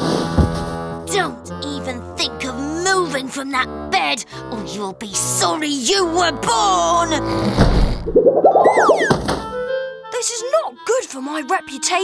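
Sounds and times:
wobbling boing: 8.0s - 9.2s
falling whistle: 8.2s - 9.2s
background music: 8.2s - 12.0s.

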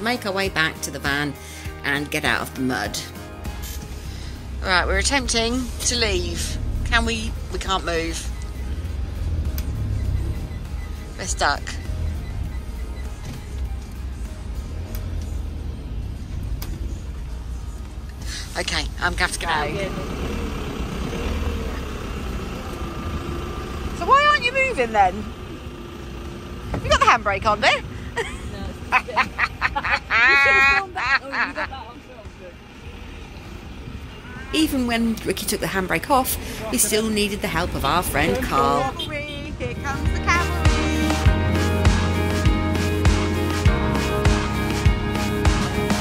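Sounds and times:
background music: 0.0s - 33.2s, 34.5s - 46.0s
diesel engine rumbling: 0.0s - 46.0s.

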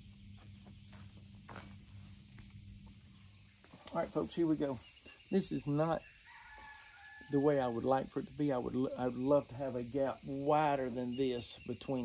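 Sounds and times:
soft footsteps: 0.0s - 5.3s
insects chirping: 0.0s - 12.0s.

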